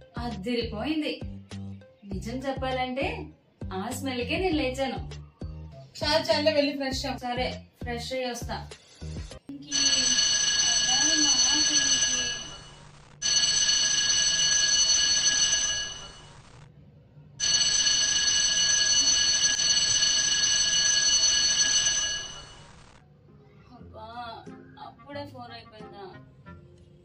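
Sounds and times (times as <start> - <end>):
mobile phone alert tone: 9.7 - 16.4, 17.4 - 22.7.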